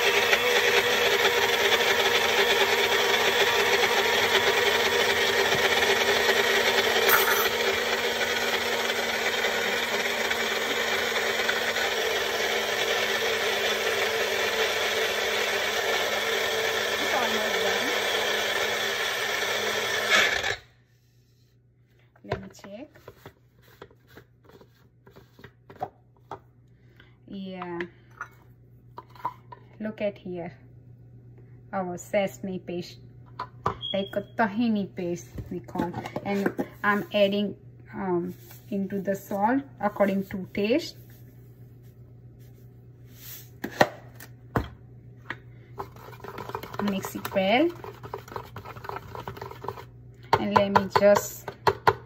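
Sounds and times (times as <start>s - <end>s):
utensil scraping thick paste: 45.8s - 49.9s.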